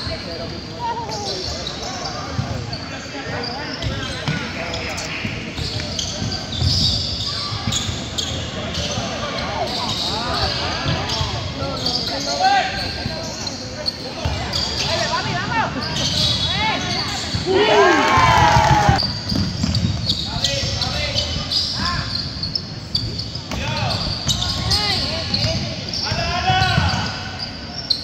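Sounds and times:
spectators' voices: 0.0s - 19.0s
basketball bouncing on court: 18.2s - 20.8s.

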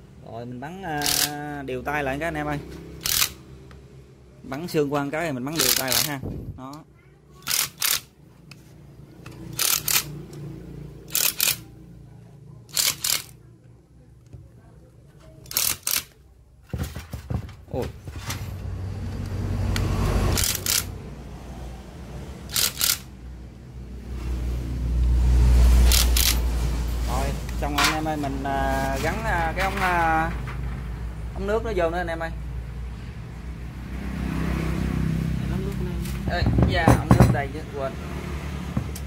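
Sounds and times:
electric screwdriver driving bolts: 1.0s - 1.3s, 3.0s - 3.4s, 7.4s - 8.1s, 9.6s - 10.2s, 11.1s - 11.6s, 12.7s - 13.3s, 15.5s - 16.1s, 20.3s - 20.9s, 22.5s - 23.1s, 25.9s - 26.4s.

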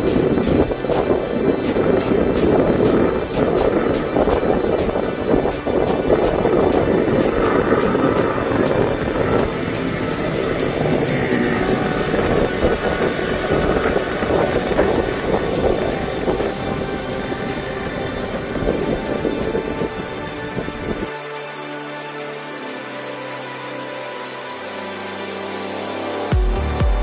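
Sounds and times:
mini motorbike engines droning: 0.0s - 26.8s
music playing: 0.0s - 27.0s.

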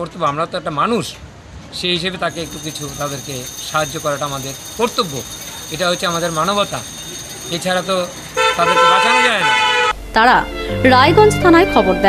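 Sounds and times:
man speaking: 1.8s - 9.7s
vehicle horn honk: 8.0s - 10.0s.

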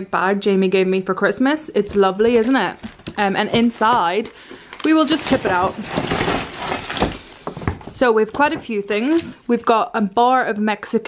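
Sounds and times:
bag and wrappers rustling: 1.9s - 9.5s.

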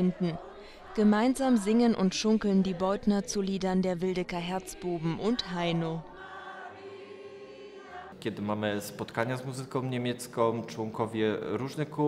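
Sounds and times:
group of people singing: 0.0s - 9.6s.

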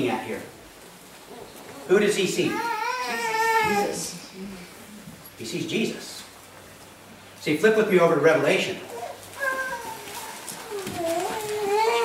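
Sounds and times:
small child whining cry: 2.5s - 4.2s, 8.9s - 12.0s.

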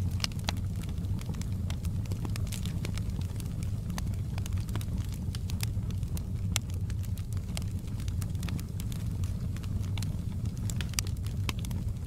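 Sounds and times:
low rumble of flames: 0.0s - 12.0s
wood fire crackling and popping: 0.0s - 12.0s.

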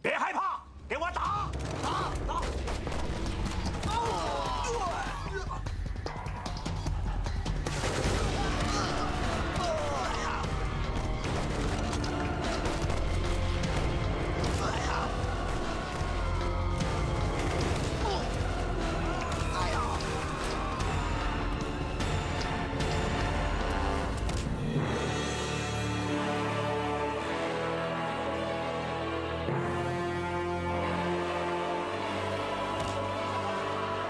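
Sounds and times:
dramatic film score: 0.0s - 34.0s
men shouting: 8.3s - 10.8s, 14.4s - 23.8s.

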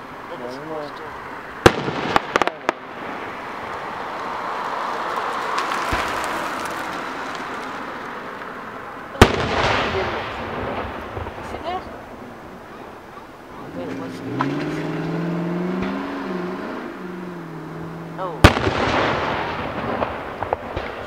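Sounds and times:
firework loud bang: 1.6s - 3.1s, 5.8s - 6.8s, 9.2s - 11.9s, 18.4s - 21.0s
rumbling echo: 1.6s - 3.2s, 9.2s - 13.6s, 18.4s - 21.0s
fireworks crackling pops: 1.6s - 12.2s, 18.4s - 21.0s.

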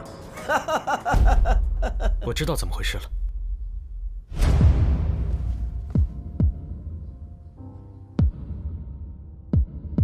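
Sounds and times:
deep heartbeat-like booms: 3.2s - 6.9s.

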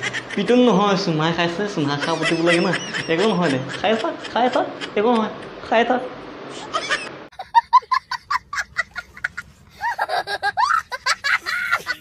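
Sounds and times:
young child laughing: 1.8s - 5.8s, 6.5s - 12.0s.

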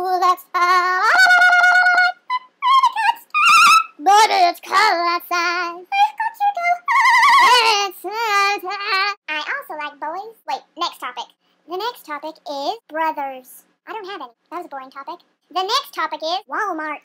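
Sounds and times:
woman singing unaccompanied: 0.0s - 9.1s.

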